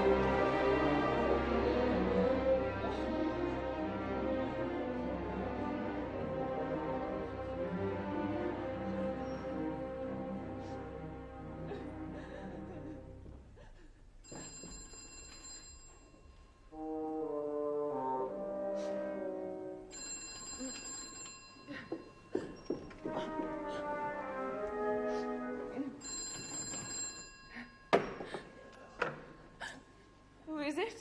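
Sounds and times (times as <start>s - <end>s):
telephone bell ringing: 14.2s - 16.8s, 19.9s - 22.8s, 26.0s - 28.2s.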